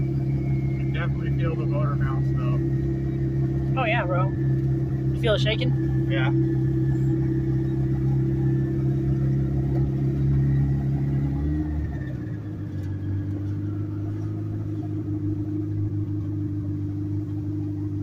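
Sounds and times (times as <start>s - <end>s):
car engine drone inside cabin: 0.0s - 18.0s.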